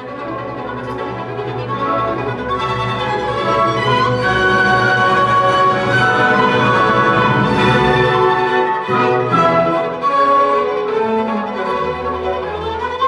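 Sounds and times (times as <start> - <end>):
orchestra playing: 0.0 - 13.0
solo violin melody: 0.0 - 13.0.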